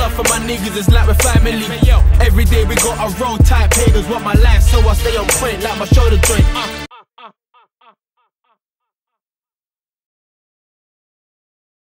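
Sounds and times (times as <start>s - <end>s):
rapped syllable with delay echo: 0.0s - 6.4s.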